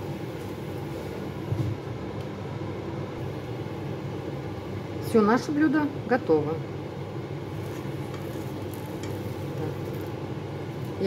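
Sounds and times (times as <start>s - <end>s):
steady low hum: 0.0s - 11.0s
omelette sizzling in a frying pan: 3.2s - 11.0s.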